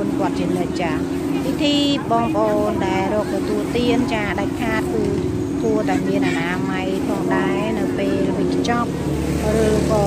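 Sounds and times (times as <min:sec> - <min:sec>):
low motor hum: 0:00.0 - 0:10.0
person speaking: 0:00.0 - 0:10.0.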